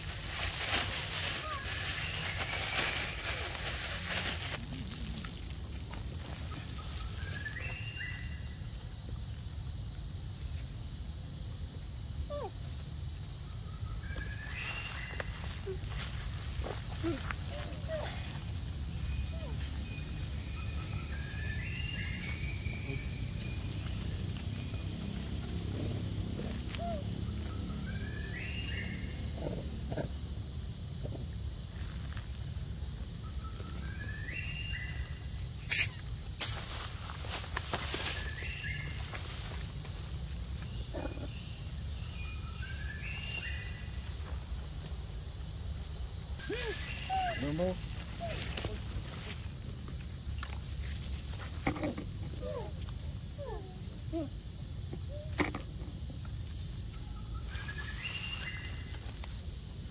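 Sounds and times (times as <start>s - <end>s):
high insect drone: 0.0s - 59.9s.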